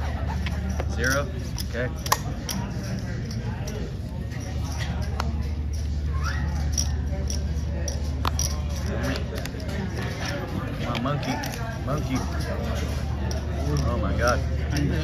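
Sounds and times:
steady low hum: 0.0s - 15.0s
voices talking: 0.0s - 15.0s
cards and chips clicking: 0.4s - 15.0s.

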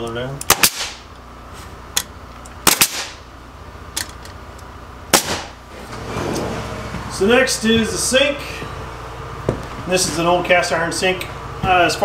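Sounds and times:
steady low hum: 0.0s - 12.0s
nail gun firing into wood: 0.4s - 1.0s, 2.6s - 3.2s, 5.1s - 5.6s.

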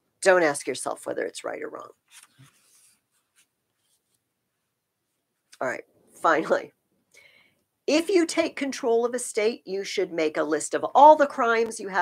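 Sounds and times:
book pages rustling: 2.0s - 4.3s.

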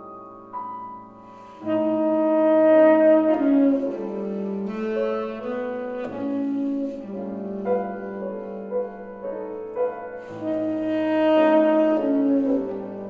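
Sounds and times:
piano accompaniment: 0.0s - 13.0s
saxophone melody: 1.3s - 13.0s.

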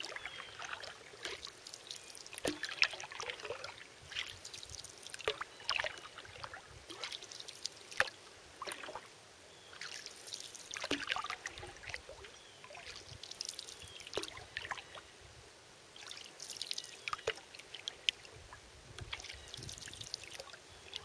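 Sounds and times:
water dripping from paddle: 0.0s - 9.1s, 9.7s - 15.0s, 16.0s - 18.3s, 19.0s - 21.0s
paddle pulling through water: 0.0s - 15.0s, 16.0s - 21.0s
water trickling: 0.0s - 15.0s, 15.9s - 21.0s.

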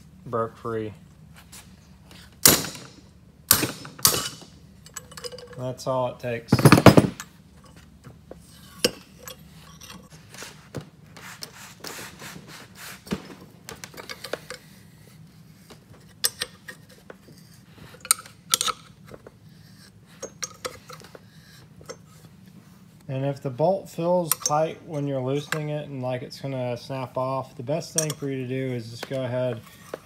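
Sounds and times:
wrench clinking on metal bolts: 2.4s - 5.7s, 6.5s - 7.8s, 16.2s - 16.8s, 18.0s - 19.0s, 24.2s - 25.7s, 27.9s - 28.3s.

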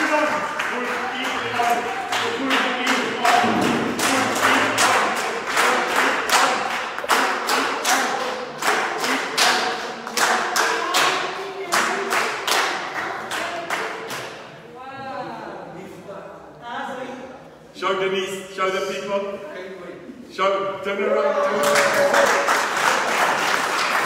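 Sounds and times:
crowd clapping in rhythm: 0.0s - 14.5s, 21.6s - 24.0s.

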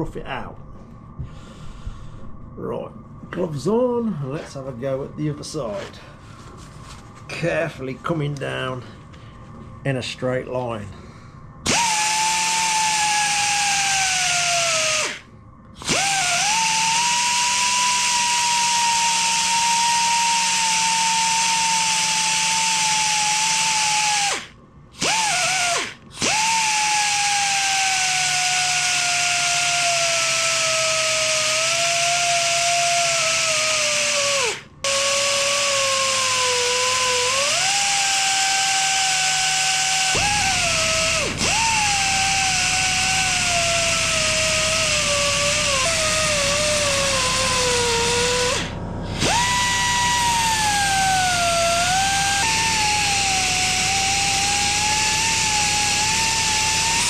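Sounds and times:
belt sander whining on metal: 11.6s - 57.0s.

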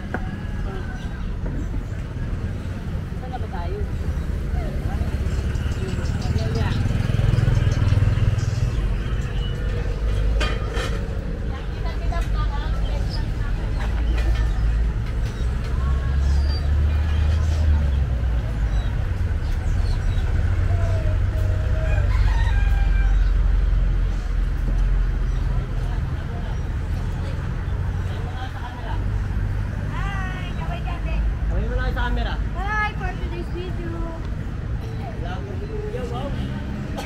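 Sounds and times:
low rumble of street noise: 0.0s - 37.0s
rooster crowing: 21.4s - 23.6s.

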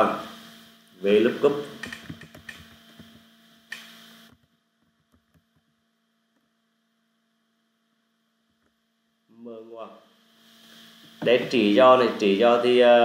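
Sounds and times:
faint electrical hum: 0.0s - 13.0s
faint keyboard clicks: 1.8s - 3.9s
burst of hiss: 10.4s - 12.5s.

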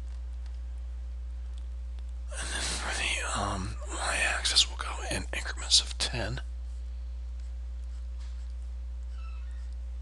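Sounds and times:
low electrical hum: 0.0s - 10.0s
man whispering: 2.3s - 6.6s.

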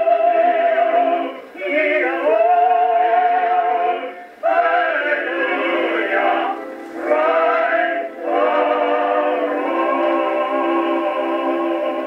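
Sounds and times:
vocal quartet singing a hymn: 0.0s - 12.0s.

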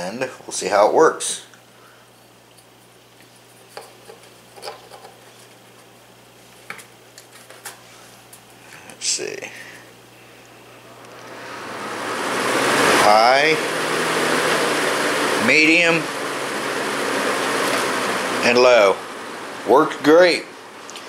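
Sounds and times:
box fan running: 0.0s - 21.0s.

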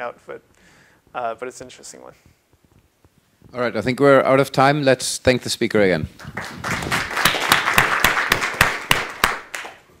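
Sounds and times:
audience applauding: 6.2s - 9.8s
sharp individual claps: 6.2s - 9.8s.

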